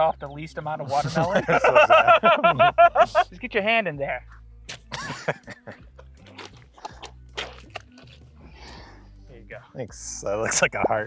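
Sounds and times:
wet squelching of fruit tearing: 0:06.0 - 0:08.8.

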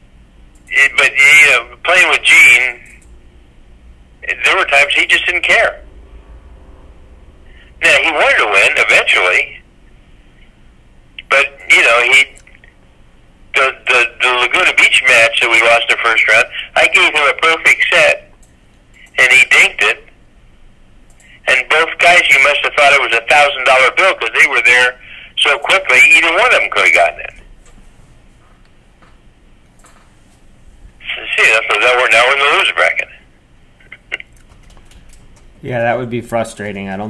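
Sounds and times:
man talking over telephone line: 0:00.7 - 0:03.0, 0:04.2 - 0:05.8, 0:07.5 - 0:09.7, 0:11.2 - 0:12.7, 0:13.5 - 0:18.3, 0:19.0 - 0:20.2, 0:21.2 - 0:27.5, 0:31.0 - 0:33.3, 0:35.6 - 0:37.0.

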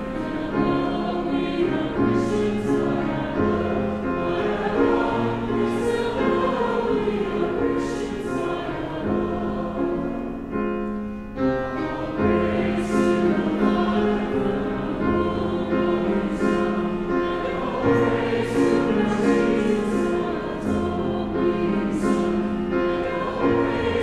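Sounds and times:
choir and congregation singing hymn: 0:00.0 - 0:10.7, 0:11.4 - 0:24.0.

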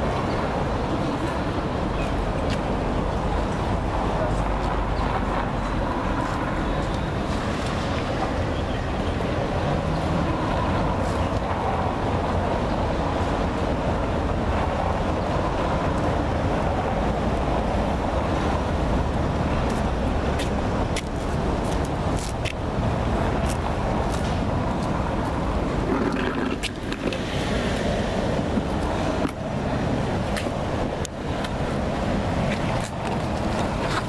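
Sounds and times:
traffic hum with low rumble: 0:00.0 - 0:34.0.

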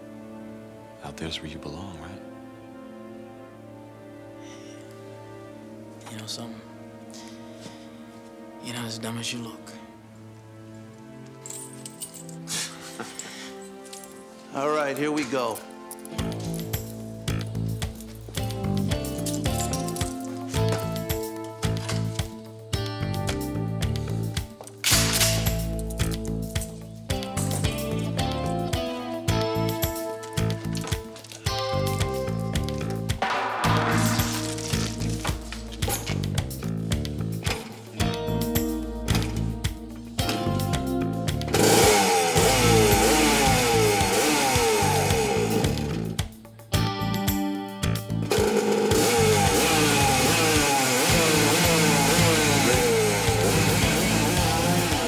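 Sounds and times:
dramatic background music: 0:00.0 - 0:47.0, 0:47.7 - 0:55.0
motorcycle engine revving: 0:41.4 - 0:46.2, 0:48.4 - 0:55.0.

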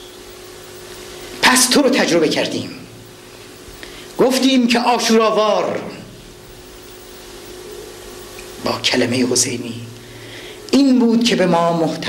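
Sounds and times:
background hiss: 0:00.0 - 0:12.0
faint even hum: 0:00.0 - 0:12.0.

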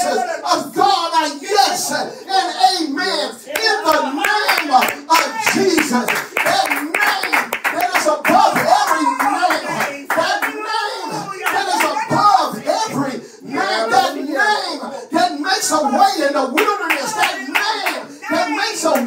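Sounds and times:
hand clapping: 0:03.6 - 0:10.6, 0:16.6 - 0:18.0.

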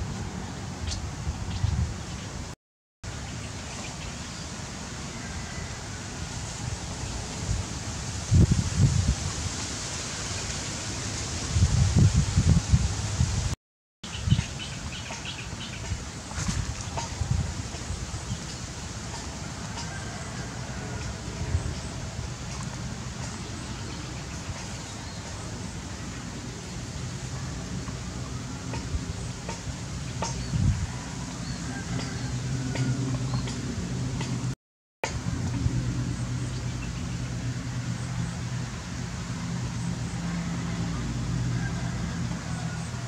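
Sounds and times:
wind buffeting microphone: 0:00.0 - 0:02.5, 0:06.3 - 0:10.3, 0:11.2 - 0:36.4.

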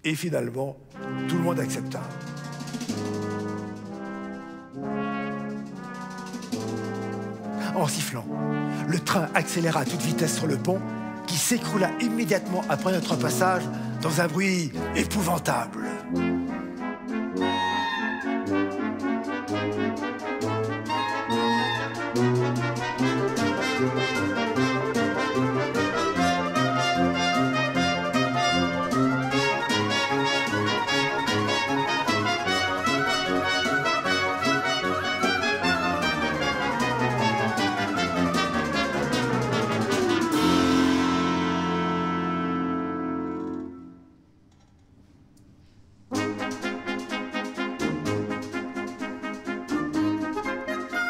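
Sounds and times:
orchestra with brass: 0:00.0 - 0:44.1, 0:46.1 - 0:51.0
rapid percussion strokes: 0:00.9 - 0:42.5, 0:46.1 - 0:51.0.

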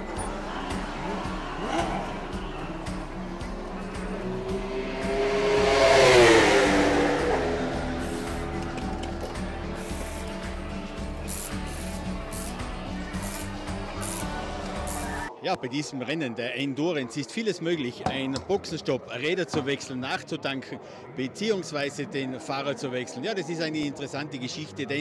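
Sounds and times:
steady engine hum: 0:00.0 - 0:15.3
race car driving past: 0:00.5 - 0:10.5.

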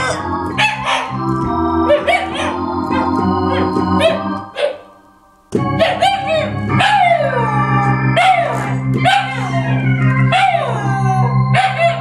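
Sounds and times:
sustained keyboard organ chord: 0:00.0 - 0:12.0
dog howling: 0:05.8 - 0:12.0.

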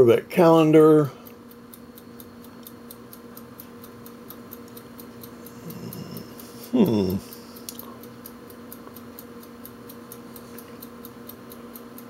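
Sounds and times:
faint steady hum: 0:00.0 - 0:12.0
light regular ticking: 0:00.0 - 0:12.0.

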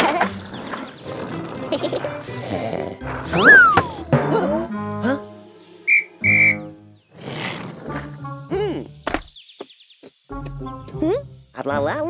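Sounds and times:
background music: 0:00.0 - 0:09.3, 0:10.3 - 0:12.0
cartoon whistle glide: 0:03.3 - 0:03.9, 0:05.9 - 0:06.7
steady whistle blast: 0:05.9 - 0:06.8.

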